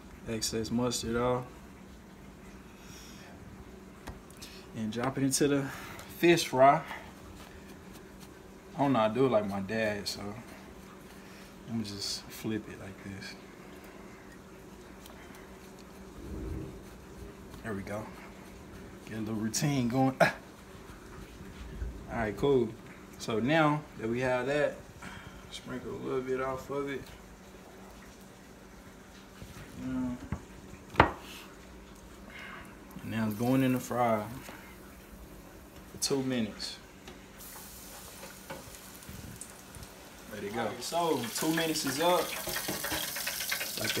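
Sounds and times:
low hum: 13.4 - 19.4
bowl shaken with soft rumble: 15.6 - 20.0
fish sizzling in deep fryer: 33.0 - 36.0, 37.2 - 44.0.

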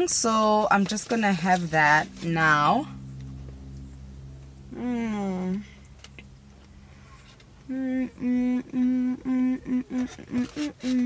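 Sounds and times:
woman humming with mouth closed: 7.6 - 11.0.

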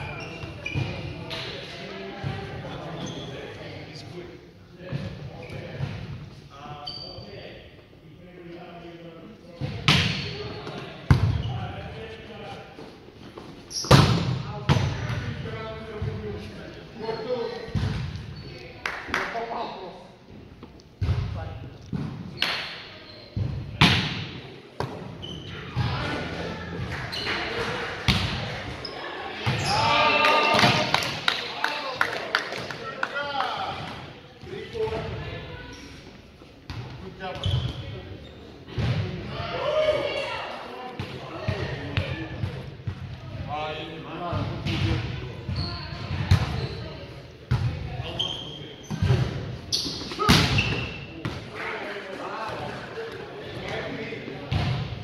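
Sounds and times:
volleyball slaps echoing: 21.0 - 25.1, 25.7 - 28.8, 48.9 - 51.6
players calling out: 25.2 - 32.0.

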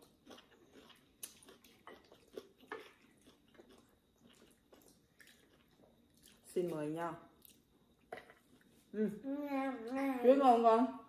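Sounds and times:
soft chewing and mouth noises: 0.0 - 8.9.

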